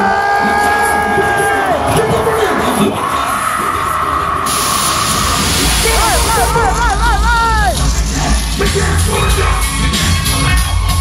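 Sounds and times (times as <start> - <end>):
white-noise hiss rush: 4.4 - 7.5
hip-hop dj music: 4.5 - 10.9.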